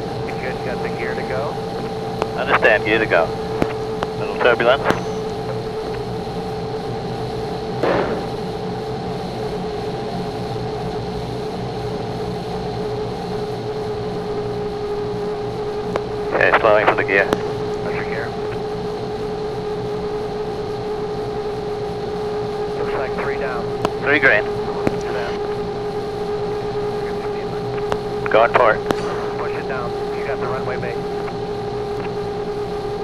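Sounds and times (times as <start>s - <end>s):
cockpit drone: 0.0s - 33.0s
radio voice: 0.2s - 5.9s, 16.2s - 18.6s, 22.7s - 25.4s, 26.5s - 31.3s.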